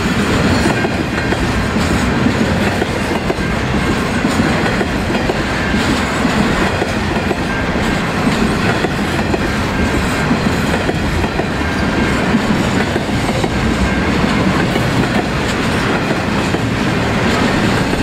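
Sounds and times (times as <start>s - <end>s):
freight train wheels rumbling: 0.0s - 18.0s.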